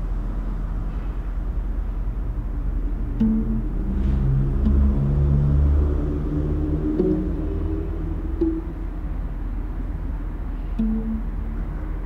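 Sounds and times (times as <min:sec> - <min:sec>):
low dark drone: 0:00.0 - 0:12.0.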